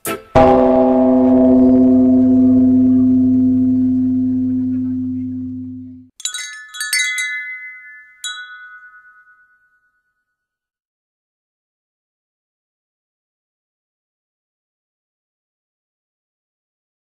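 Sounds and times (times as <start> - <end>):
deep bell-like ringing tone: 0.4 - 6.1
wind chimes ringing: 6.2 - 10.2.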